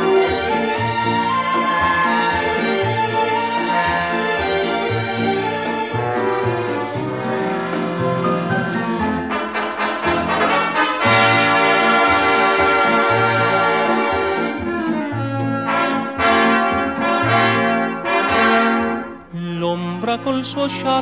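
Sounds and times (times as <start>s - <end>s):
orchestral brass chords: 0.0s - 19.4s.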